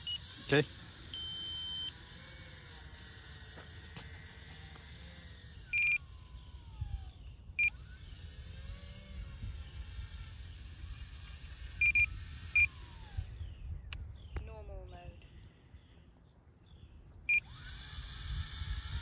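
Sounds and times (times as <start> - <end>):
electric motors whining: 0.0 - 14.4, 17.2 - 19.0
short electronic beeps: 1.1 - 2.0, 5.7 - 6.0, 11.8 - 12.7
wind rumble on microphone: 6.4 - 19.0.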